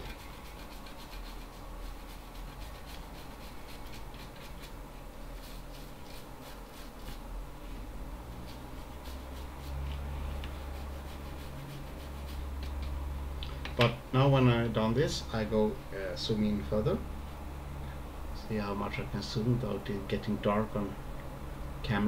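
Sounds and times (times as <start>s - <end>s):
toothbrush scrubbing circuit board: 0.0s - 7.3s, 8.4s - 12.9s.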